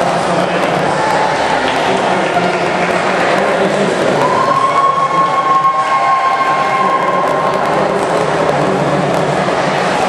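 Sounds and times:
echoing crowd in pool hall: 0:00.0 - 0:10.0
steady high tone: 0:04.1 - 0:09.1.

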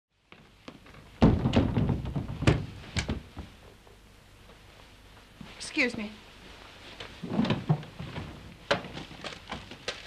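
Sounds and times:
soft knocks of movement: 0:00.3 - 0:10.0
door shutting with heavy thud: 0:01.2 - 0:03.5.

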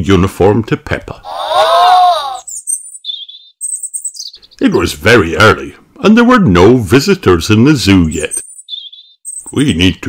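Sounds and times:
bird chirps and tweets: 0:02.2 - 0:04.8, 0:08.0 - 0:09.8.

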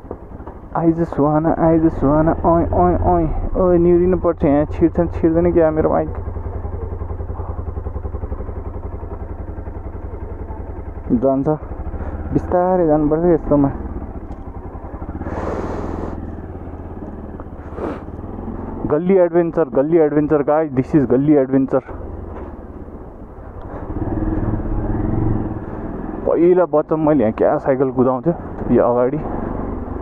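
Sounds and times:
motorcycle engine idling: 0:00.0 - 0:30.0.

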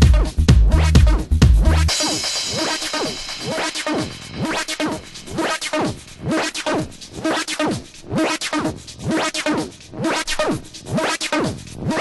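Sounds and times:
looped electronic house music: 0:00.0 - 0:12.0.

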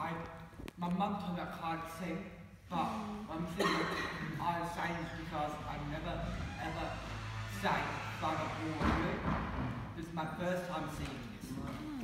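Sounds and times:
man talking: 0:00.0 - 0:12.0.

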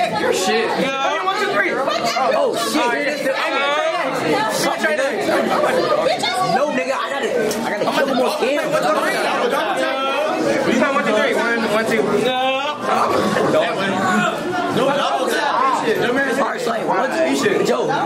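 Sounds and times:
chatter of many voices: 0:00.0 - 0:18.0.

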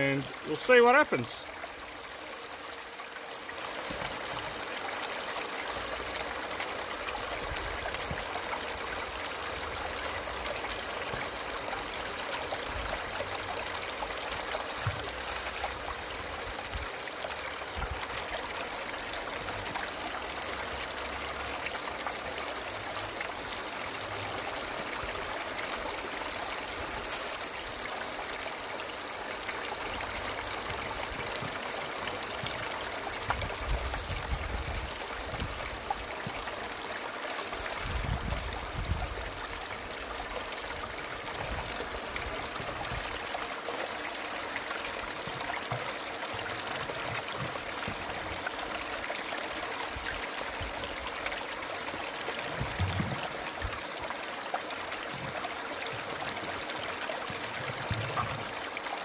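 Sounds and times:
water rushing down a sluice: 0:00.0 - 0:59.0.

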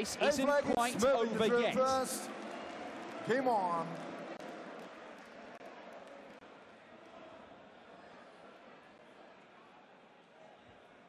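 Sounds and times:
faint crowd murmur: 0:00.0 - 0:11.0.

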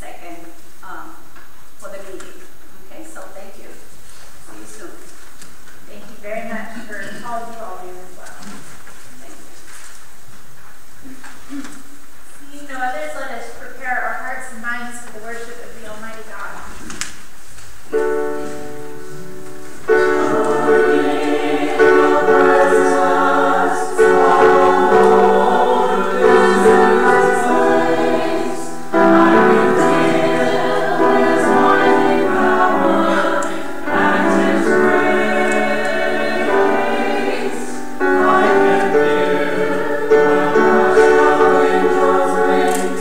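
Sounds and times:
church choir singing: 0:17.9 - 0:43.0.

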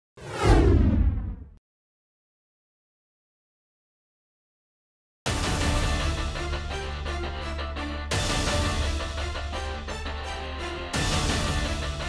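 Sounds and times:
whoosh with deep rumble: 0:00.2 - 0:01.6.

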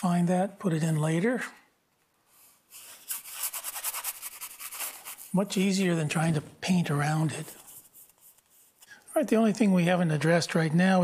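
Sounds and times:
brush scrubbing canvas: 0:02.7 - 0:05.4, 0:07.4 - 0:08.8.

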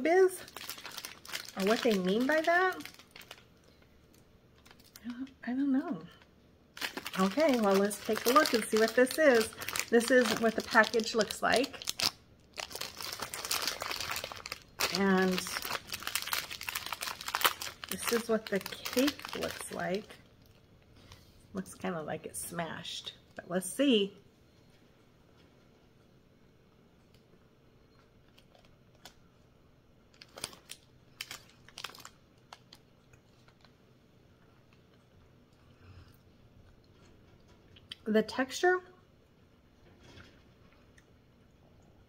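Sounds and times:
plastic wrapper crinkling: 0:00.0 - 0:05.3, 0:06.0 - 0:21.2, 0:28.2 - 0:29.4, 0:30.0 - 0:33.8.

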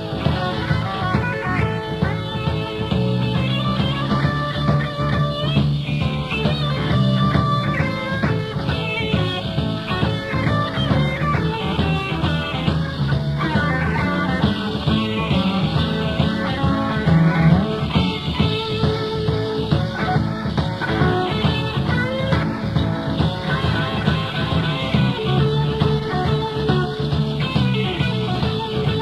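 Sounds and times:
electric guitar lead: 0:00.0 - 0:29.0
live rock band playing: 0:00.0 - 0:29.0.

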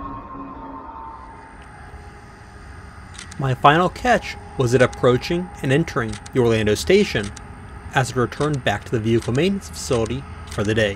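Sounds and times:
passenger train rumble: 0:01.3 - 0:10.9.

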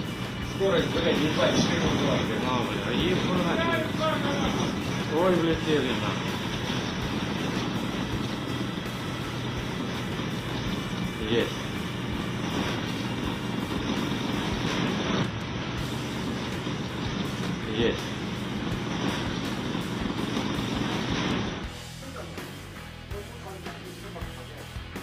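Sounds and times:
machinery hum and rumble: 0:00.0 - 0:24.9.

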